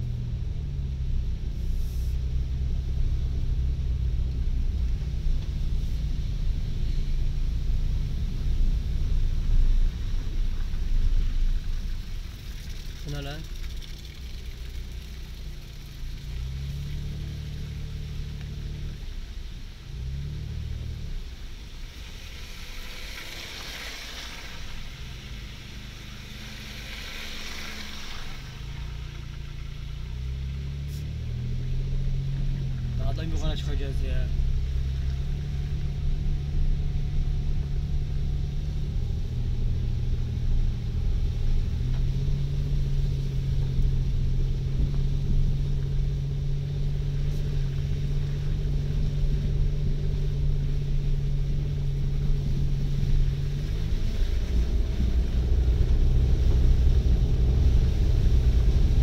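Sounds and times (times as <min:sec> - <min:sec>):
car engine hum: 0:00.0 - 0:59.0
tyres on gravel road: 0:00.0 - 0:59.0.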